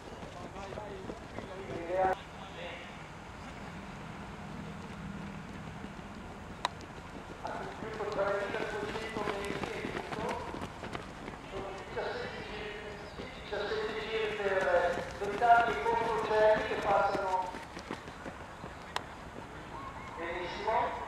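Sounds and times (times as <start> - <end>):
running shoes pattering on track: 0.0 - 2.2, 4.6 - 21.0.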